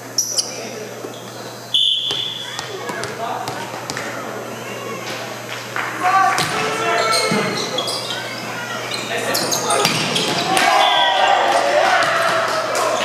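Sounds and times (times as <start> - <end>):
volleyball hits and thuds: 9.8 - 10.8.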